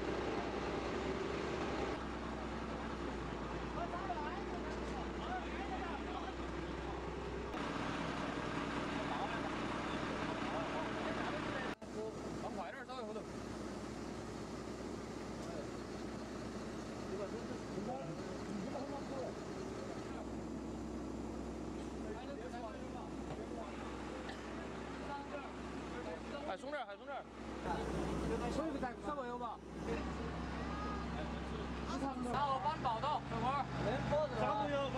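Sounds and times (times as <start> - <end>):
heavy truck engine idling: 0.0 - 34.9.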